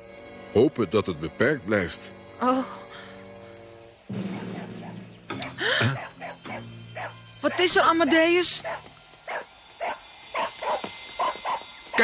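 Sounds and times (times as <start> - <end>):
hound barking: 4.3 - 12.0.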